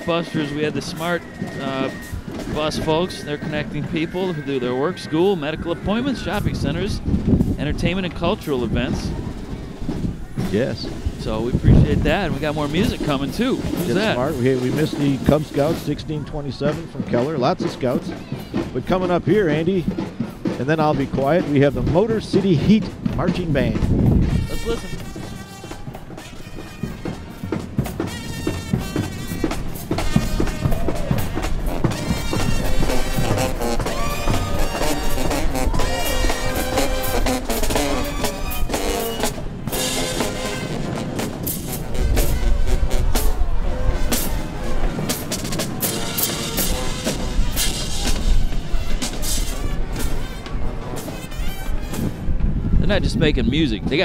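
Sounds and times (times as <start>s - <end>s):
bass drums: 0.0s - 54.0s
marching band playing: 0.0s - 54.0s.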